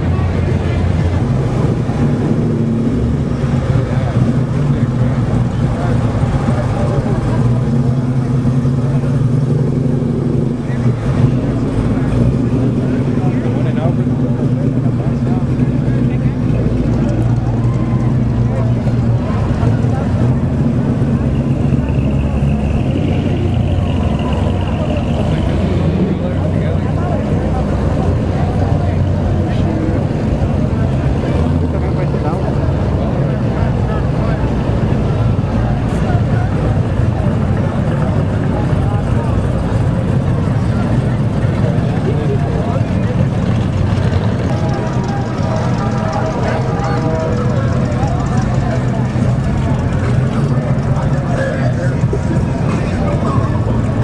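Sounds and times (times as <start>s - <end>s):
car engines rumbling past: 0.0s - 54.0s
crowd chatter: 0.0s - 54.0s.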